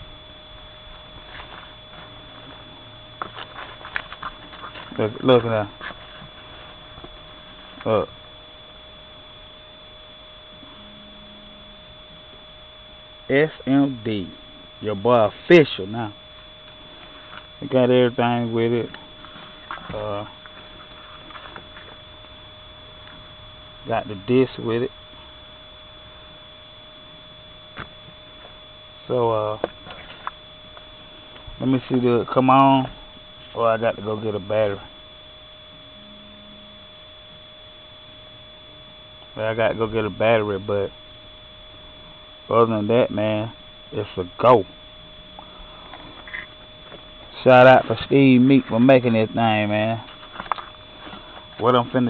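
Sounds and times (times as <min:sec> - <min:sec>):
faint high whine: 0:00.0 - 0:52.0
low hum: 0:00.0 - 0:52.0
steady background hiss: 0:00.0 - 0:52.0.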